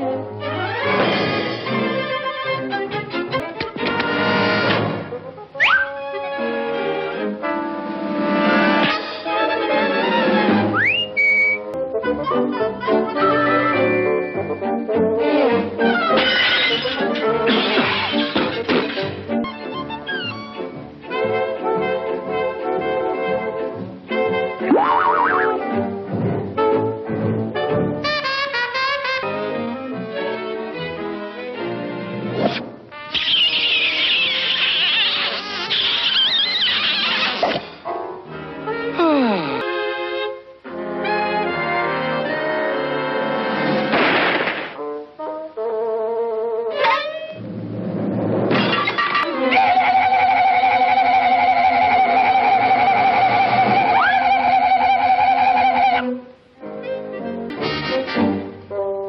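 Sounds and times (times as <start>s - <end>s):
orchestral music: 0.0s - 33.1s, 55.8s - 59.0s
cartoon whistle sweeping up: 5.6s - 6.0s, 10.8s - 11.7s, 24.7s - 25.6s, 33.1s - 37.5s, 53.0s - 55.6s
wooden boards crashing: 43.9s - 44.8s.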